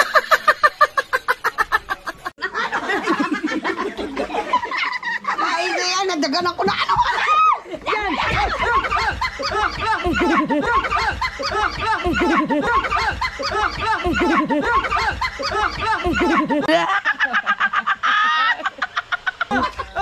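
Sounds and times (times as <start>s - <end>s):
women laughing and shrieking: 6.6s - 20.0s.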